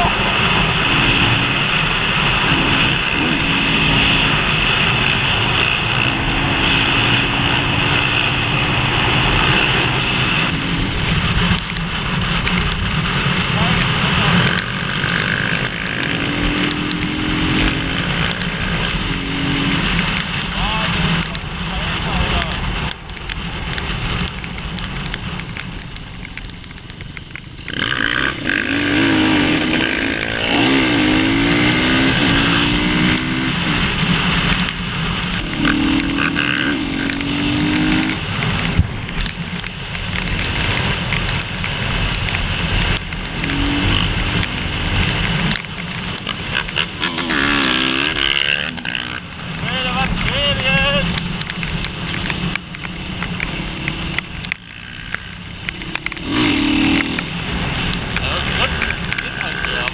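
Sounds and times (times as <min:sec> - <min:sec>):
motorcycle engines revving: 0:00.0 - 0:59.9
wind rush on microphone: 0:30.5 - 0:47.0.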